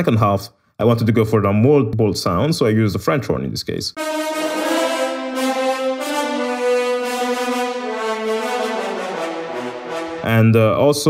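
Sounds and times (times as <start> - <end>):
french horn section playing melody: 4.0 - 10.5.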